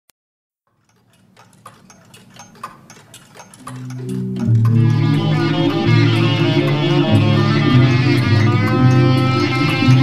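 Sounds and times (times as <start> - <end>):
even mechanical ticking: 0.7 - 7.0.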